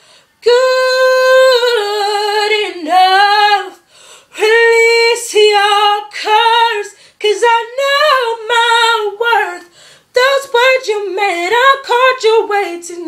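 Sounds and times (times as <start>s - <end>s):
short breaths: 0.0s - 0.4s, 3.8s - 4.4s, 6.9s - 7.2s, 9.7s - 10.1s
woman singing unaccompanied: 0.3s - 13.0s.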